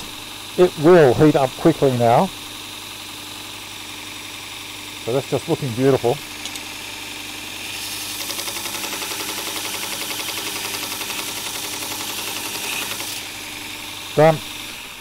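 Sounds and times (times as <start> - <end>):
belt sharpener motor hum: 0.0 - 15.0
blade grinding on sanding belt: 5.0 - 15.0.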